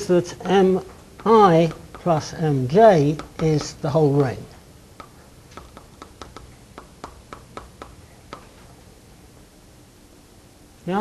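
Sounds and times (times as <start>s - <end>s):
chalk tapping on a blackboard: 1.2s - 8.7s.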